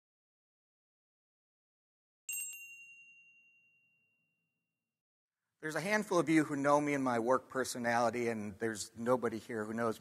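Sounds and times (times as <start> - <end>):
bright metallic ding: 2.3 - 4.1.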